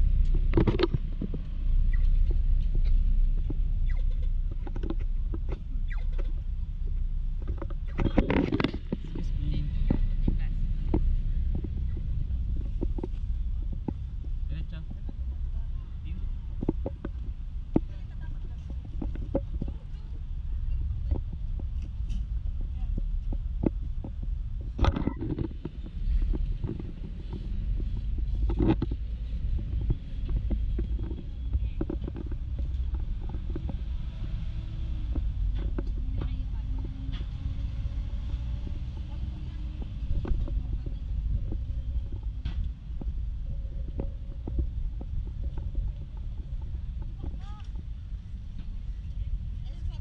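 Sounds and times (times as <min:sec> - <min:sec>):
steady low rumble: 0:00.0 - 0:50.0
sharp clicks and knocks: 0:00.2 - 0:06.4.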